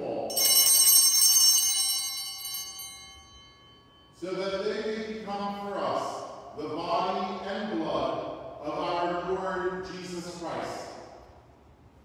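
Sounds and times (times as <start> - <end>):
altar bells ringing: 0.3 - 4.7.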